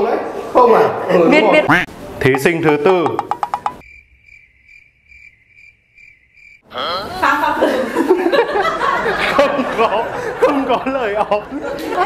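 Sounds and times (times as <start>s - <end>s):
crickets chirping: 3.2s - 6.9s.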